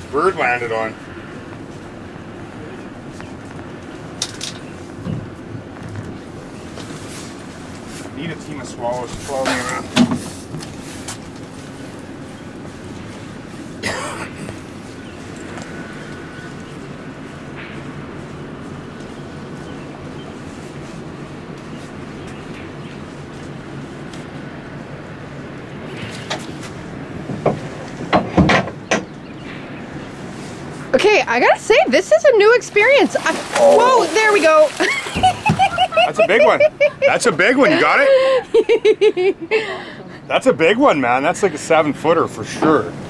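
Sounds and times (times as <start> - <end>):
boat engine rumble: 0.0 - 43.0.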